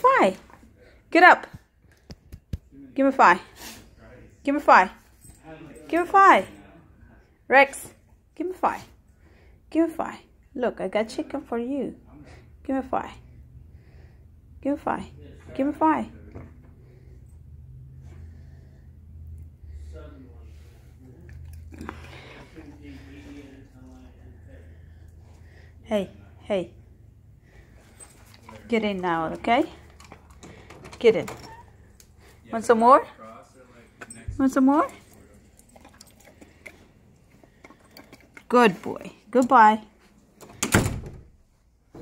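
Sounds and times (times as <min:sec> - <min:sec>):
dog chewing: 0:28.1 - 0:30.7, 0:34.8 - 0:38.5
door thud shutting: 0:40.5 - 0:41.3.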